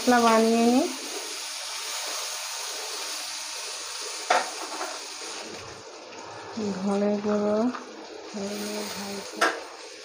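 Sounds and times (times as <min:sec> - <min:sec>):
beans sizzling in hot oil: 0:00.0 - 0:10.0.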